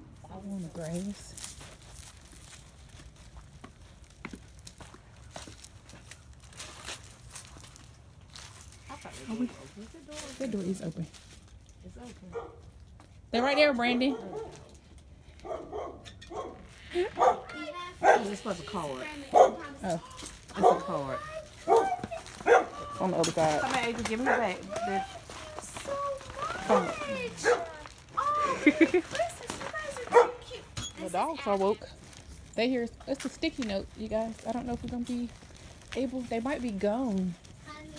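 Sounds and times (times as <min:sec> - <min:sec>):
faint footsteps on concrete: 0:00.1 - 0:37.9
dog barking behind door: 0:13.9 - 0:14.7, 0:15.4 - 0:18.6, 0:19.2 - 0:19.8, 0:20.5 - 0:21.0, 0:21.6 - 0:22.9, 0:24.2 - 0:24.7, 0:27.4 - 0:27.8, 0:30.0 - 0:30.6.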